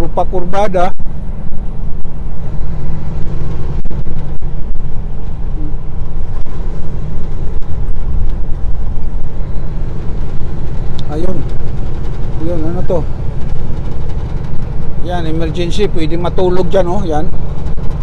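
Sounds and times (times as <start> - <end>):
truck diesel engine rumble: 0.0 - 18.0.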